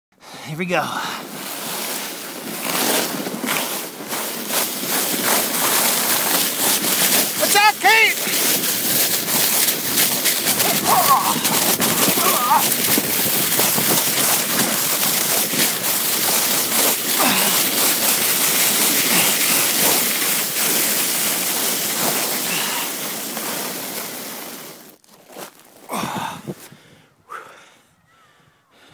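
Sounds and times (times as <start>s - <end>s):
sled scraping over snow: 0.2s - 26.7s
wind rushing past microphone: 9.3s - 15.6s, 26.0s - 27.1s.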